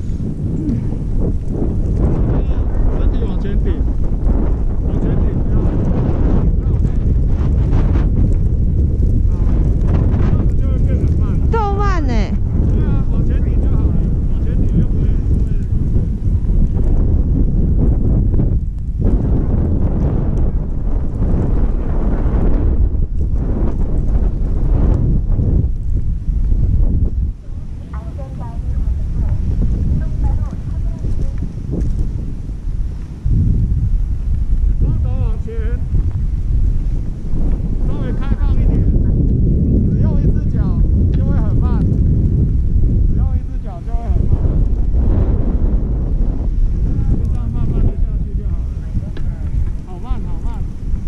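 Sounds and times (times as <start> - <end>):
wind rushing over microphone: 0.0 - 51.0.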